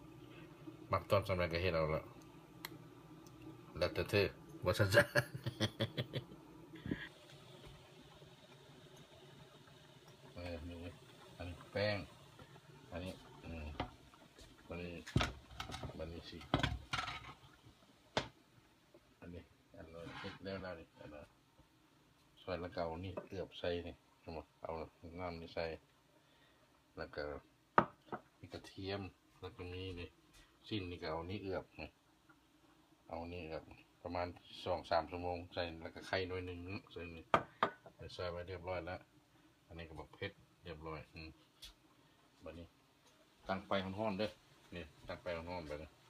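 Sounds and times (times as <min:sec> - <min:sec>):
person talking: 0:03.7 - 0:05.3.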